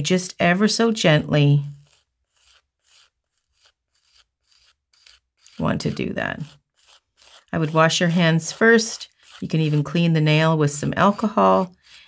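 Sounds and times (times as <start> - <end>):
nail file rubbing fingernail: 1.6 - 12.0.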